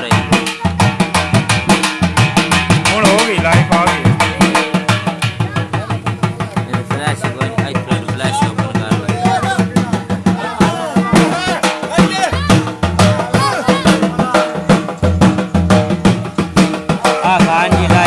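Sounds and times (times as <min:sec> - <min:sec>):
drum beaten in fast rhythm: 0:00.0 - 0:18.0.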